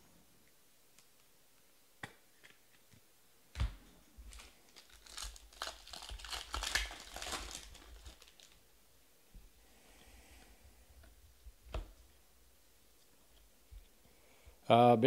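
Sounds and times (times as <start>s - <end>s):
foil wrapper tearing and crinkling: 4.3s - 8.6s.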